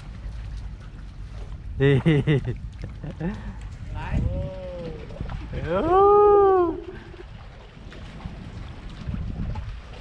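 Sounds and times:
man laughing: 0:01.8 - 0:03.6.

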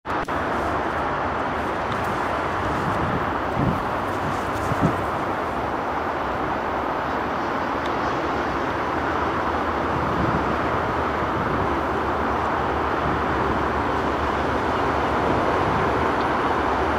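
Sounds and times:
diesel locomotive engine droning: 0:00.1 - 0:16.9.

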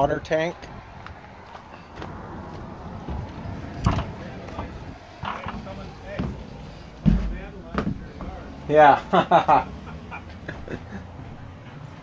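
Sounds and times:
thumps: 0:03.0 - 0:08.4.

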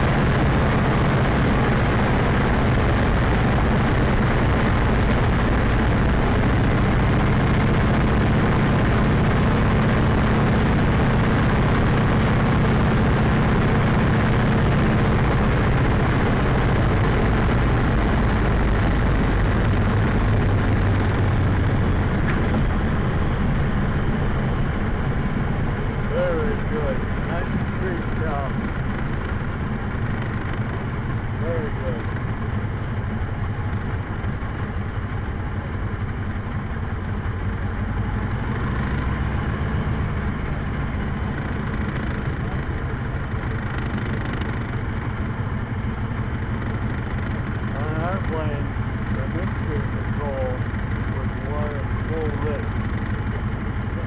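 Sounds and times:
propeller plane engine running: 0:00.0 - 0:54.0.

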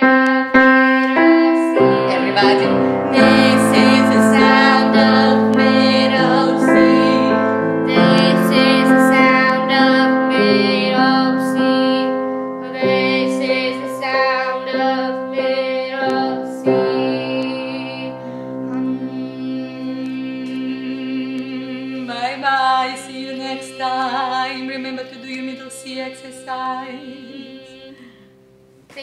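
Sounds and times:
girl and woman singing: 0:00.0 - 0:28.2
grand piano playing: 0:00.0 - 0:28.2.

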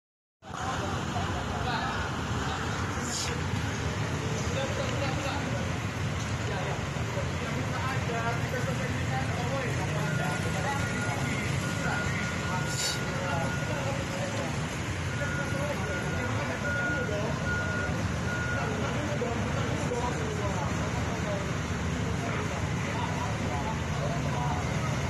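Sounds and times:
crowd voices: 0:00.4 - 0:25.0
street traffic: 0:00.4 - 0:25.0
high electronic beep: 0:09.8 - 0:14.2.

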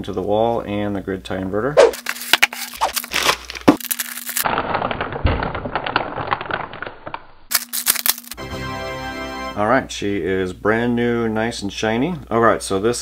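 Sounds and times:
foam and cardboard cracking and scraping: 0:01.9 - 0:08.4.

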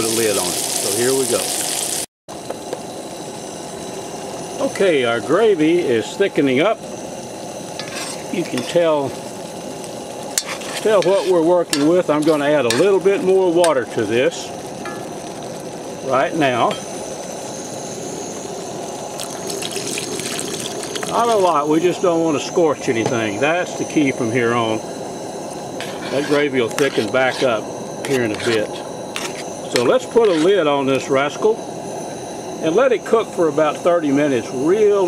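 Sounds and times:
pot simmering: 0:00.0 - 0:33.8
gravy simmering in a pot: 0:06.3 - 0:22.9
water splashing into gravy: 0:19.2 - 0:21.2.

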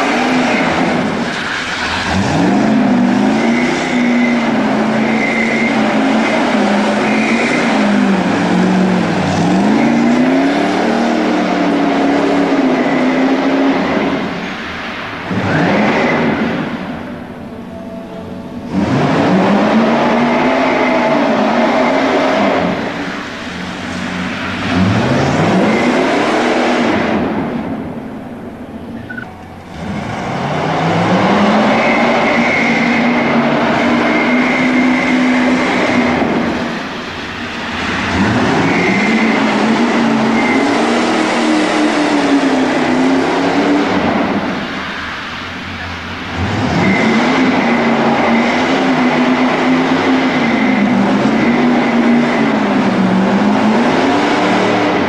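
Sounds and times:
car engine revving hard: 0:00.0 - 0:17.1, 0:18.6 - 0:28.0, 0:29.7 - 0:55.0.

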